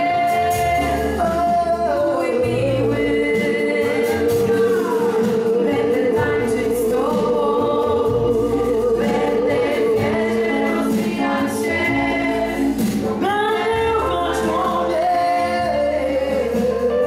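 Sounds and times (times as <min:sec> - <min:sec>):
live worship band playing: 0:00.0 - 0:17.0
voices singing: 0:00.0 - 0:17.0.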